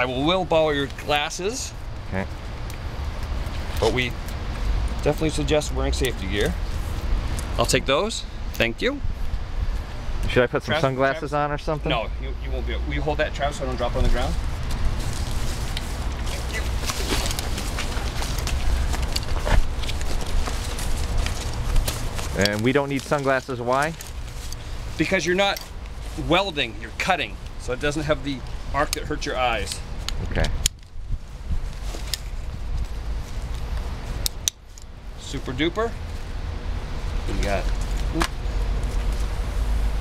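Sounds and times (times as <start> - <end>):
steady low rumble: 0.0 - 40.0
backpack straps and gear rustling: 14.1 - 26.4, 28.4 - 34.9.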